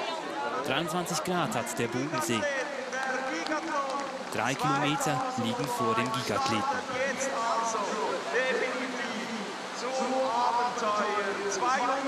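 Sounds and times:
person narrating: 0:00.6 - 0:02.5, 0:04.4 - 0:07.4
background hiss: 0:00.6 - 0:12.0.

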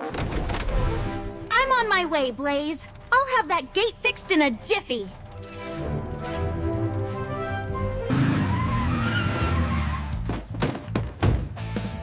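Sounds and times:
background music: 0:00.0 - 0:12.0
cartoon truck engine revving: 0:00.7 - 0:10.3
tires skidding: 0:07.0 - 0:10.3.

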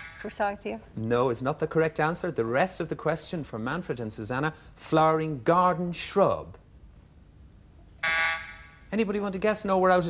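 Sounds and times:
electronic time-up buzzer: 0:00.0 - 0:00.4, 0:08.0 - 0:08.8.

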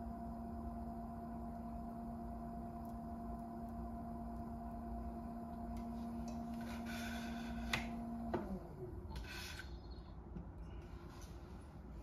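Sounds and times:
pottery wheel motor humming: 0:00.0 - 0:12.0.

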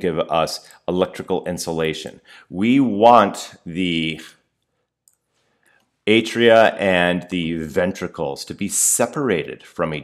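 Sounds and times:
man speaking: 0:00.0 - 0:04.4, 0:06.1 - 0:10.0.

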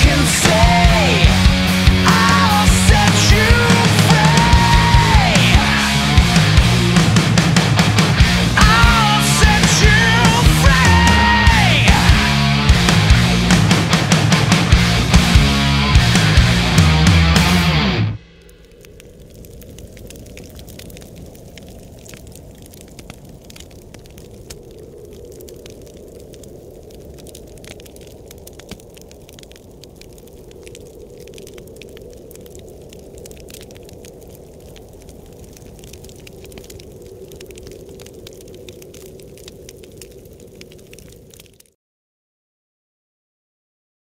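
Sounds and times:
bonfire flames rushing: 0:00.0 - 0:41.8
fire crackles and pops: 0:00.0 - 0:41.8.

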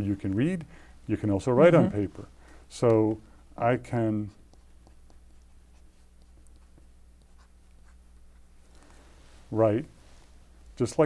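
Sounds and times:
stylus scratching and tapping screen: 0:01.6 - 0:09.1.

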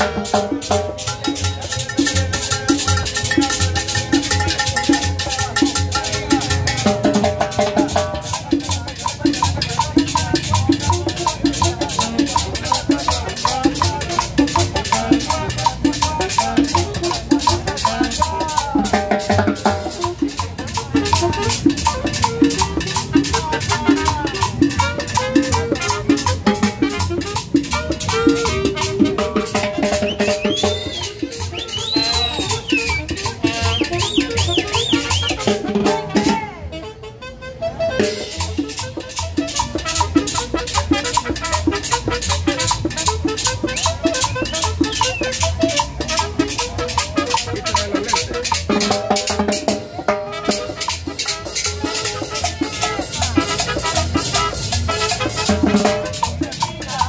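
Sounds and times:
conga: 0:00.0 - 0:57.0
saxophone melody: 0:00.0 - 0:57.0
upright bass: 0:00.0 - 0:57.0.

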